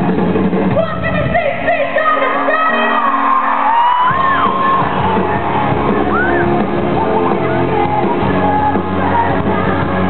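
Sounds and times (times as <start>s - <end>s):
bass guitar: 0.0s - 1.4s, 2.9s - 10.0s
drums: 0.0s - 10.0s
live rock band playing: 0.0s - 10.0s
people yelling: 2.0s - 10.0s.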